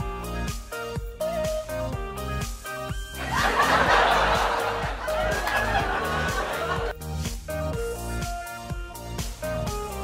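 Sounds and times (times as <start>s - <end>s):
background music: 0.0s - 10.0s
burst of laughter: 3.2s - 6.9s.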